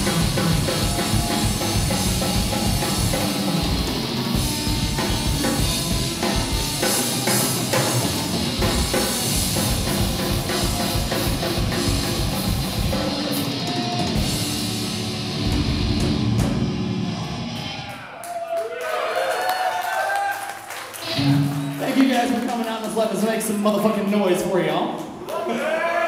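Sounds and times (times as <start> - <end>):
fast drum kit: 0.0 - 17.0
distorted electric guitars: 0.0 - 18.0, 20.9 - 24.1.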